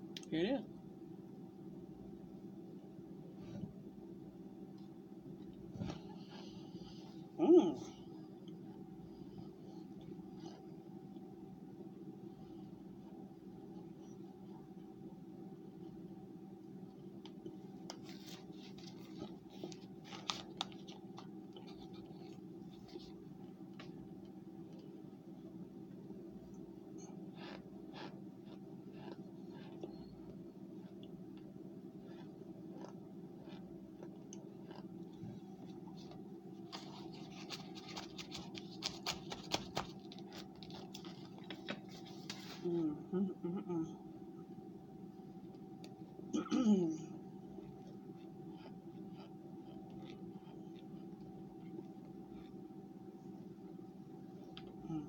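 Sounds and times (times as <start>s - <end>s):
steady low hum: 0.0s - 55.0s
person humming mm: 7.4s - 8.0s, 42.6s - 44.0s, 46.4s - 47.2s, 54.8s - 55.0s
crunchy chewing: 27.0s - 41.5s, 47.6s - 52.6s.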